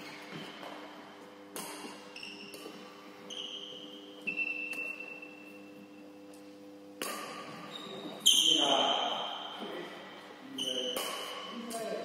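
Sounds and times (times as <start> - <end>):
sharp shuttlecock hits: 1.5 - 2.9, 3.7 - 5.2, 7.0 - 7.7, 10.8 - 12.0
high ringing tone: 3.3 - 6.2.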